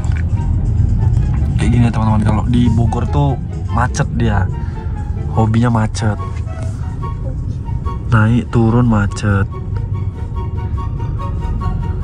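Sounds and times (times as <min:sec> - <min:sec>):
faint background music: 0:00.0 - 0:12.0
low rumble inside car cabin: 0:00.0 - 0:12.0.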